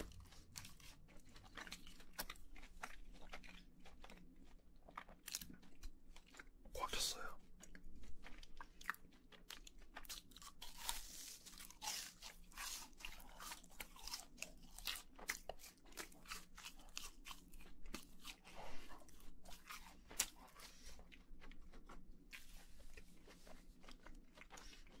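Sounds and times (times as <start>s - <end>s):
chewing crispy fried food: 0.0s - 25.0s.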